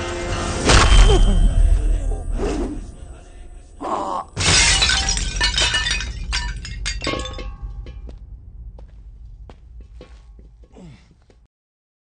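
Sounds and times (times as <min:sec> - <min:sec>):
glass breaking crash: 0:00.6 - 0:01.8, 0:04.4 - 0:08.0
glass shards tinkling: 0:04.4 - 0:08.0.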